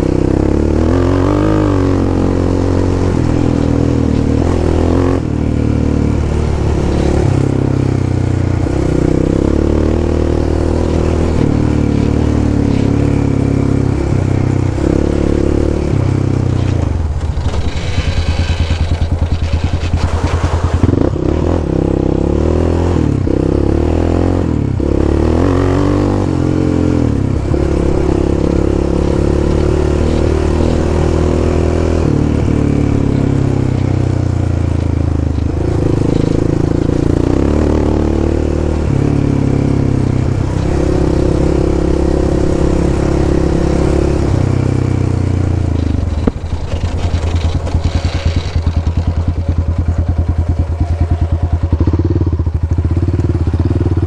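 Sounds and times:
quad bike engine running: 0:00.0 - 0:54.0.

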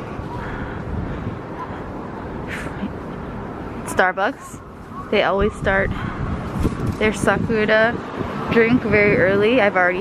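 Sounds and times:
city street noise: 0:00.0 - 0:10.0
wind rumbling on microphone: 0:00.0 - 0:10.0.

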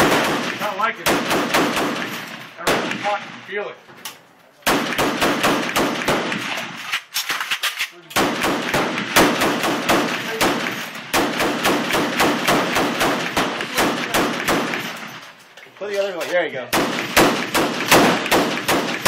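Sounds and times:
machine gun firing: 0:00.0 - 0:03.3, 0:04.7 - 0:06.8, 0:08.2 - 0:15.2, 0:16.7 - 0:19.0.

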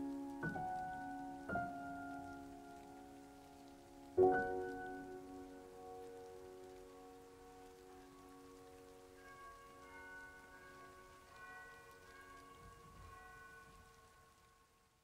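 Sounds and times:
soft solo piano: 0:00.0 - 0:09.5
faint hiss: 0:00.0 - 0:15.0.

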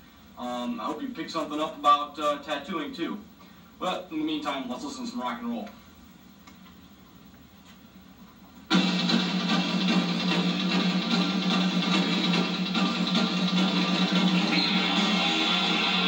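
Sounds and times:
rock music with guitar: 0:08.7 - 0:16.0.

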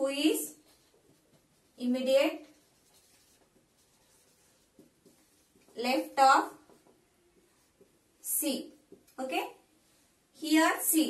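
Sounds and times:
marker writing on whiteboard: 0:00.0 - 0:09.6.

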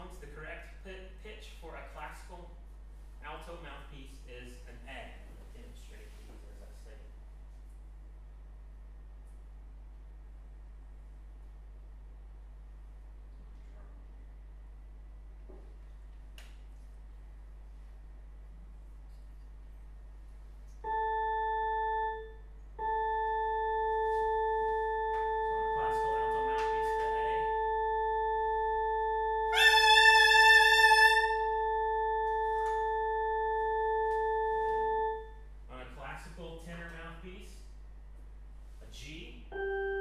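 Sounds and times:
pure steady reference tone: 0:20.7 - 0:35.6
buzzy saxophone mouthpiece: 0:29.5 - 0:31.5.

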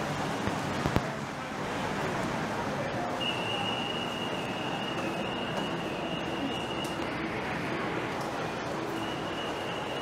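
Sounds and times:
hubbub of busy hall: 0:00.0 - 0:10.0
trolley wheels squealing: 0:03.2 - 0:07.1, 0:08.7 - 0:10.0.

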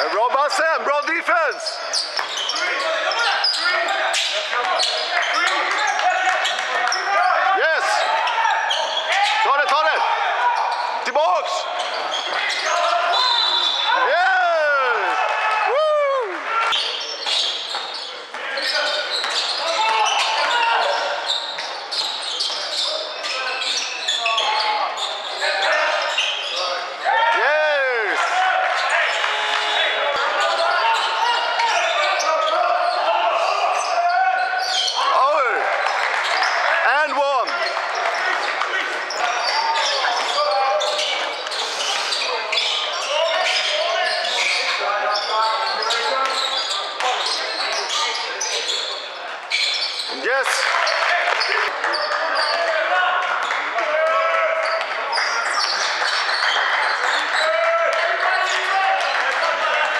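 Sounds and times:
voices and calls in a hall: 0:00.0 - 0:59.9
shoe squeals: 0:00.9 - 0:14.2, 0:16.5 - 0:59.3.

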